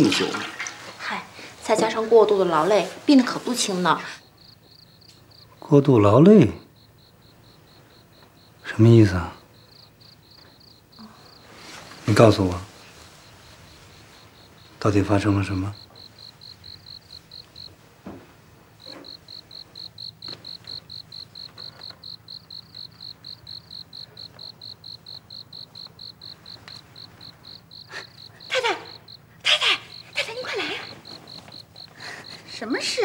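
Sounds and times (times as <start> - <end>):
crickets chirping: 0.0 - 33.0.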